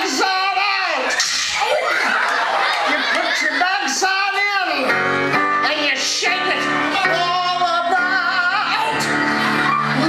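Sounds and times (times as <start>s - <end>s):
live country band music: 0.0s - 10.0s.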